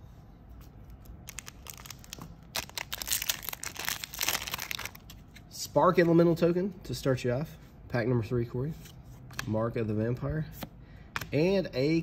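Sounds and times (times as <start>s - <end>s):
foil wrapper crinkling: 1.2s - 5.1s.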